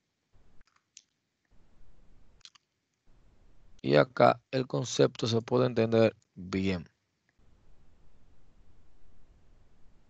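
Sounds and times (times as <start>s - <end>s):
faint low room noise: 0.0s - 10.0s.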